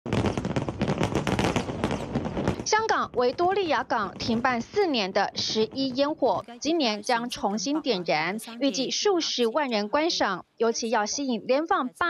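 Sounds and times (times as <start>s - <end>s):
aerial fireworks bangs and crackles: 0.1s - 7.0s.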